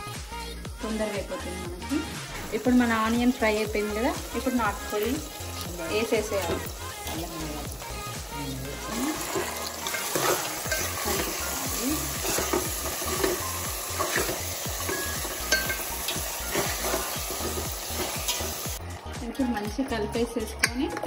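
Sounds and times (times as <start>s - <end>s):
chicken sizzling in hot oil: 2.5s - 18.8s
metal spoon scraping a pot: 9.1s - 18.6s.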